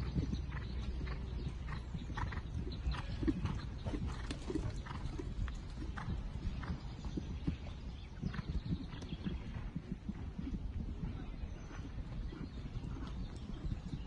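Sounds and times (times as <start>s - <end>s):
horse hoofbeats on grass: 0.0s - 14.0s.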